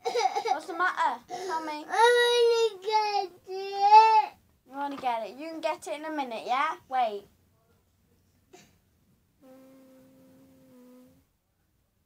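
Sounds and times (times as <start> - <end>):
person humming one note: 9.4 - 11.2.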